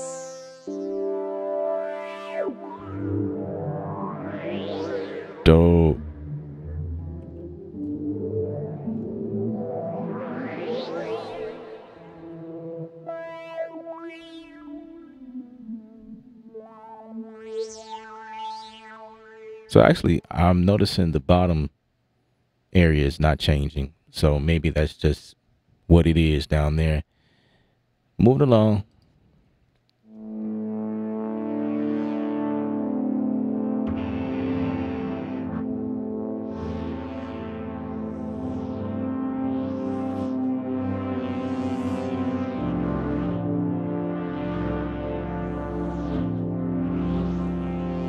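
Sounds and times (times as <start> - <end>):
synthesizer held notes: 0.0 - 20.7, 30.1 - 48.0
gliding synth sweeps: 1.6 - 19.8.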